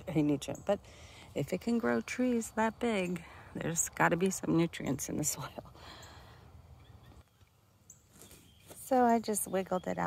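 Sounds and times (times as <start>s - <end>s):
woman speaking: 0.0s - 5.8s, 8.8s - 10.0s.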